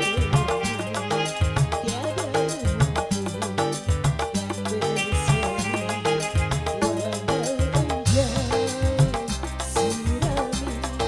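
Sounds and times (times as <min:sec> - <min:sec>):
band playing: 0:00.0 - 0:11.0
drum strokes: 0:00.0 - 0:11.0
woman singing into a microphone: 0:00.0 - 0:11.0.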